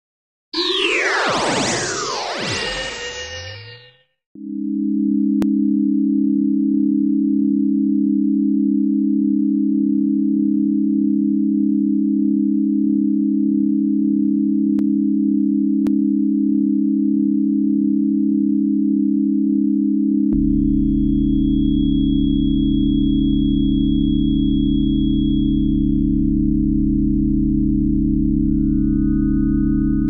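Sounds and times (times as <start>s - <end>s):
synthesizer drone: 0.6s - 4.0s.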